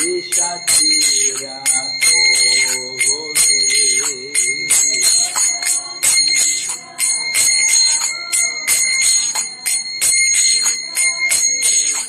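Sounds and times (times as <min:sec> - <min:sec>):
hand bell ringing rapidly: 0:00.0 - 0:12.0.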